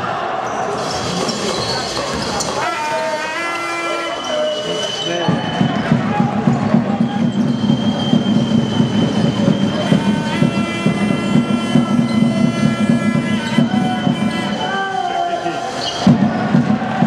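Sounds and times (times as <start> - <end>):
sports hall noise: 0.0 - 17.0
sneaker squeaks on court floor: 0.4 - 2.6.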